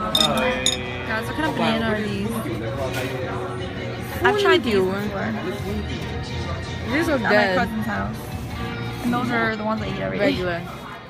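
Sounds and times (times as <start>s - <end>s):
tableware clinking: 0.0s - 1.4s.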